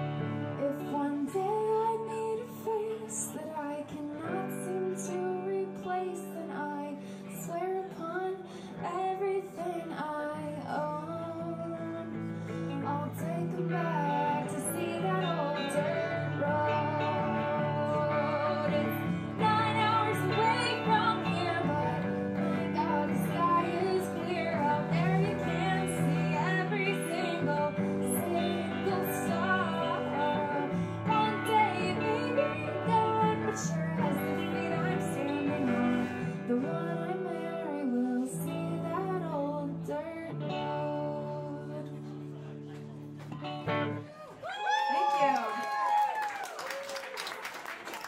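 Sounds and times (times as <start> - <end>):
woman singing: 0.0 - 42.5
electric guitars: 0.0 - 48.0.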